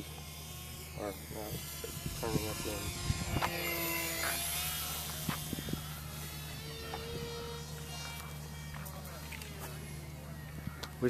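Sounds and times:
model airplane engine buzzing: 0:00.0 - 0:11.0.

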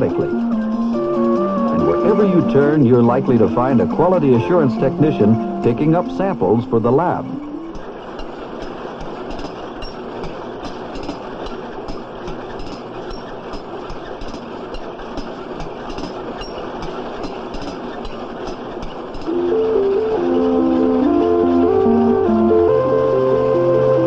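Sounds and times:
music: 0:00.0 - 0:07.9, 0:19.3 - 0:24.0
packing machine clattering: 0:00.0 - 0:22.9
regular machine clicking: 0:00.0 - 0:22.9.

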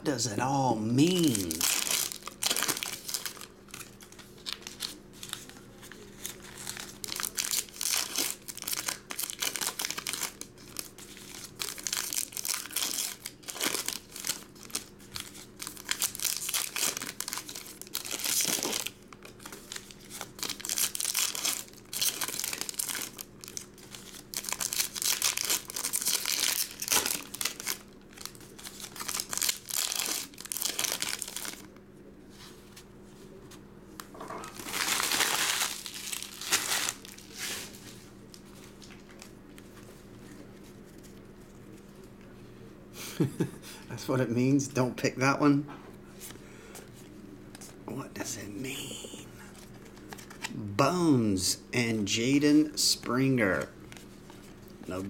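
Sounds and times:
foil packs crinkling and tearing: 0:01.0 - 0:31.7, 0:34.4 - 0:39.3.

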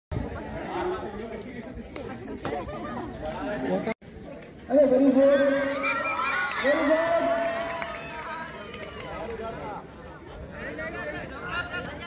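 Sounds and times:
overlapping crowd chatter: 0:00.1 - 0:12.0.

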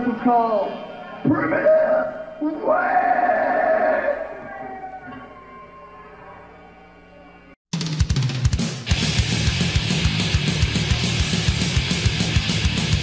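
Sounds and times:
death metal band: 0:00.0 - 0:05.4, 0:07.8 - 0:13.0.

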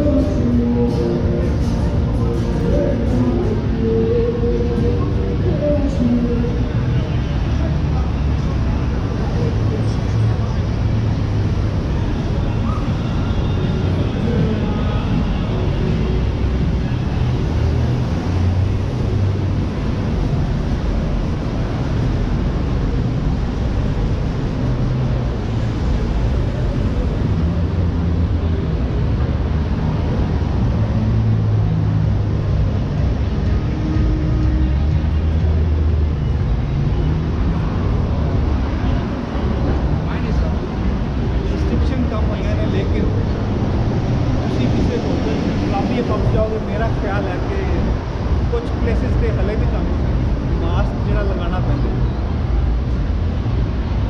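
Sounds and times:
passers-by talking: 0:00.0 - 0:54.0
road traffic: 0:00.0 - 0:54.0.

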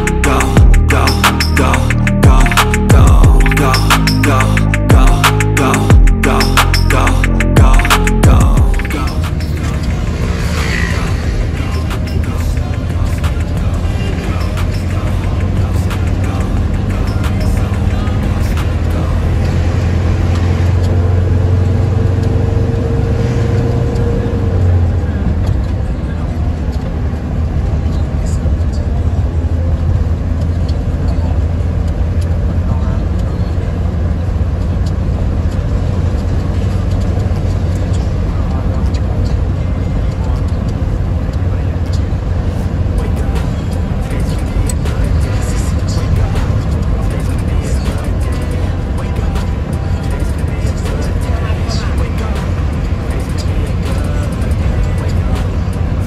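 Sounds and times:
music with vocals: 0:00.0 - 0:26.9, 0:35.6 - 0:56.0
car driving rumble: 0:00.0 - 0:56.0.

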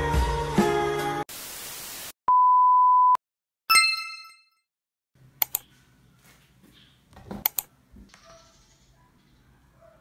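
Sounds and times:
static hiss burst: 0:01.3 - 0:02.2.

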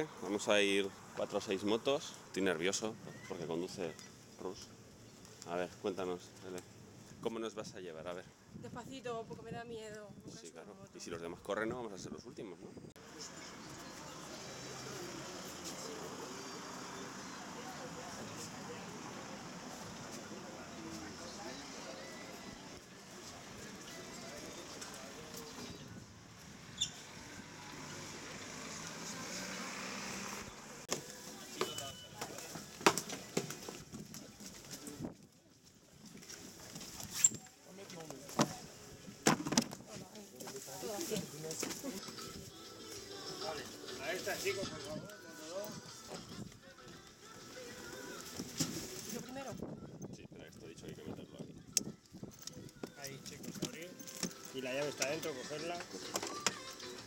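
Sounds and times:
faint music: 0:13.0 - 0:26.5.

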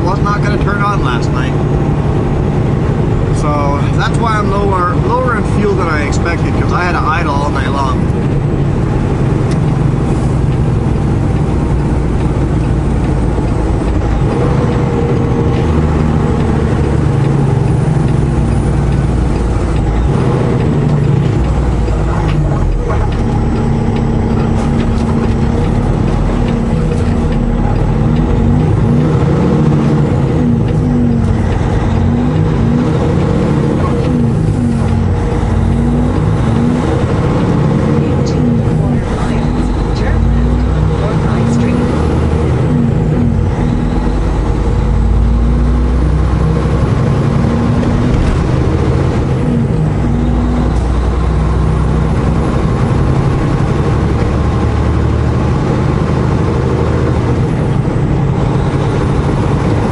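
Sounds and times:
road noise: 0:00.0 - 0:59.9
truck diesel engine running: 0:00.0 - 0:59.9.

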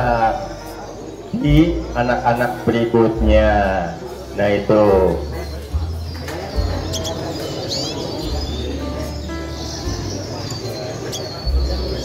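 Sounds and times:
finches chirping: 0:00.0 - 0:12.0.

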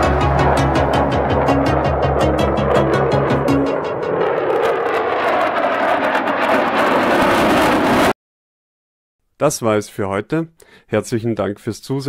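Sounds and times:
jet engines roaring: 0:00.0 - 0:08.1.

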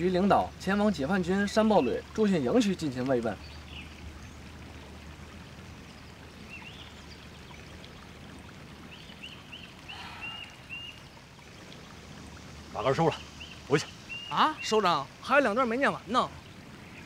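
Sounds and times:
low hum and hiss: 0:00.0 - 0:17.0
bird chirping: 0:08.8 - 0:11.2, 0:12.8 - 0:15.1.

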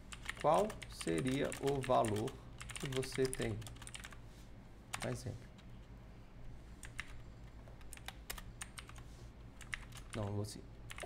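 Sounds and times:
typing on computer keyboard: 0:00.1 - 0:04.2, 0:06.8 - 0:07.2, 0:07.8 - 0:09.0, 0:09.6 - 0:10.2.

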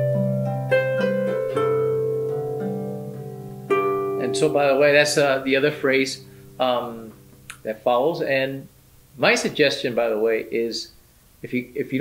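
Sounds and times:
harp strings plucked: 0:00.0 - 0:08.4
man's voice: 0:04.2 - 0:12.0.

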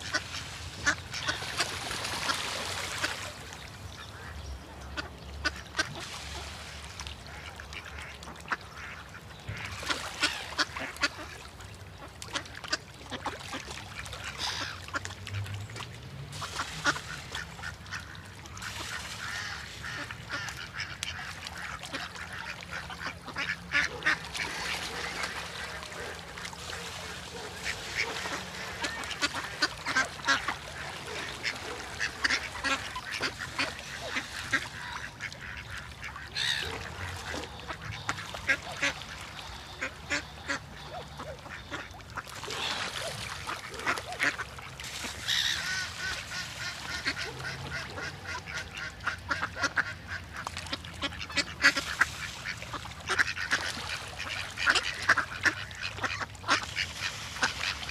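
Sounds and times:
ducks quacking: 0:00.0 - 0:15.5, 0:16.4 - 0:57.9.

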